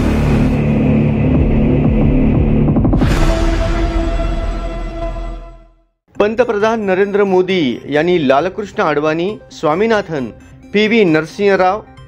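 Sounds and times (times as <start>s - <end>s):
low throbbing drone music: 0.0s - 5.7s.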